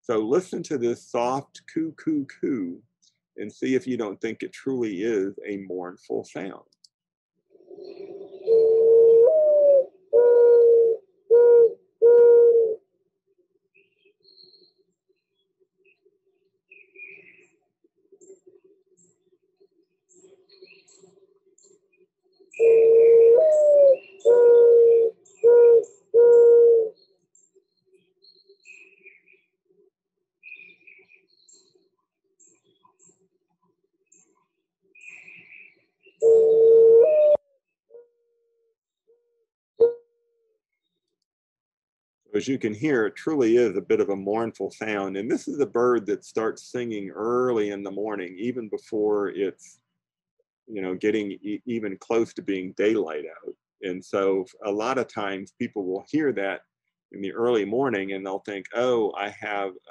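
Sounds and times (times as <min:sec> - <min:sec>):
mourning dove cooing: 0:07.5 - 0:12.8, 0:22.6 - 0:27.0, 0:36.2 - 0:37.4, 0:43.7 - 0:46.2
faint bird chirps: 0:07.6 - 0:12.4, 0:13.7 - 0:17.6, 0:18.2 - 0:29.5, 0:30.4 - 0:33.2, 0:34.1 - 0:37.4.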